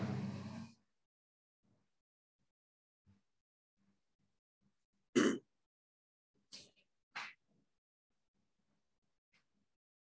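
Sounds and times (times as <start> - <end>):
man clearing his throat: 5.2 - 5.5.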